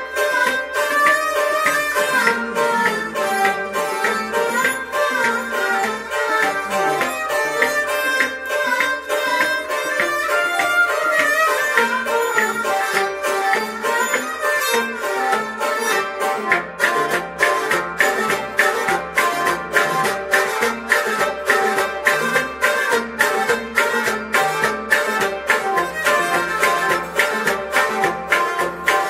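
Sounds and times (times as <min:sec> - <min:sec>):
bowed string instrument: 0:00.0 - 0:29.0
clay pot drum: 0:00.0 - 0:29.0
harmonium melody: 0:00.0 - 0:29.0
plucked lute: 0:00.0 - 0:29.0.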